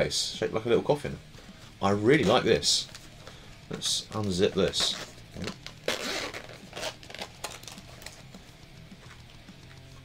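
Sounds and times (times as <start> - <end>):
faint background music: 0.0 - 10.0
fabric zip rasping: 4.8 - 8.1.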